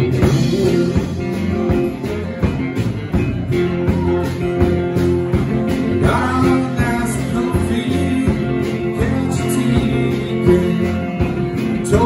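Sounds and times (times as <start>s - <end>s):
drum kit beat: 0.0s - 12.0s
electric guitar: 0.0s - 12.0s.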